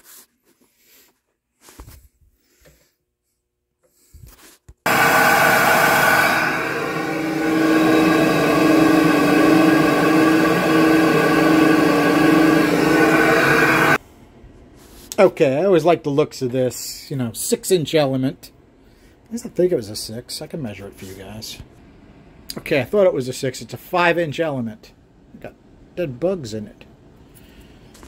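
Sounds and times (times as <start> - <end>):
flow bench motors whining: 4.9 - 14.0.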